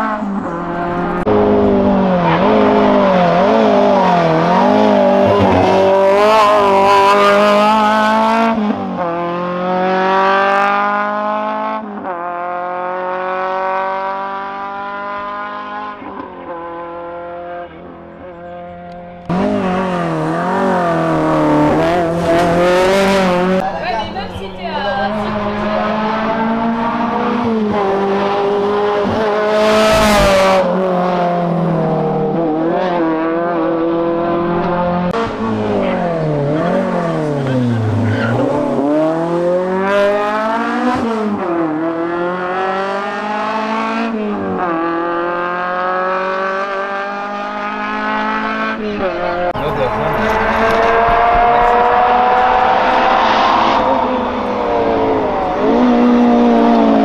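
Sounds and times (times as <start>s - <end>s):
rally car engine revving: 0.0s - 57.0s.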